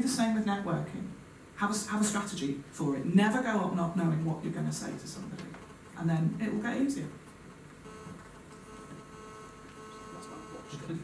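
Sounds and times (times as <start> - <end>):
faint electrical hum: 0.0 - 11.0
thin high whine: 7.8 - 11.0.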